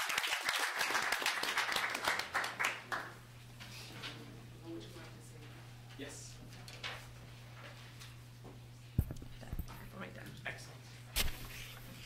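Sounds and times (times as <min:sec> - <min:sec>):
low electrical hum: 0:01.0 - 0:12.0
microphone knocks: 0:09.0 - 0:09.9.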